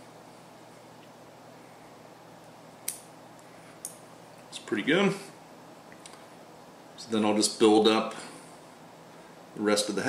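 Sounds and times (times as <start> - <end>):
small scissors snipping hair: 2.8 - 3.1.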